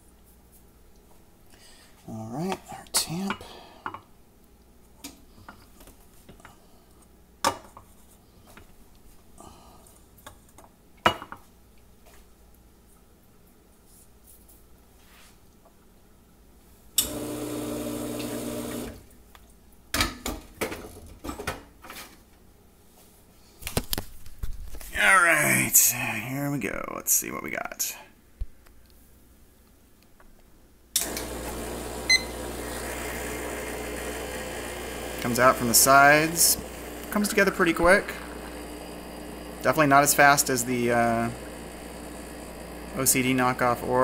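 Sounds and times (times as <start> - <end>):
machine humming and hissing: 17.0 - 19.0, 31.0 - 44.0.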